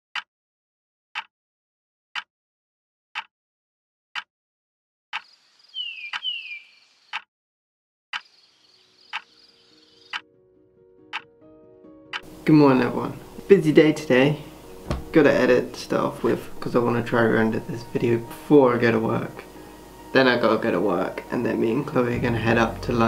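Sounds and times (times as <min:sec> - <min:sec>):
quiet music notes: 0:10.4 - 0:23.0
soft high hiss: 0:12.2 - 0:23.0.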